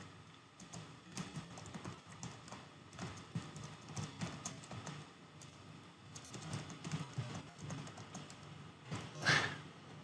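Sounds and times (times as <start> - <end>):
typing on computer keyboard: 0.6 - 8.5.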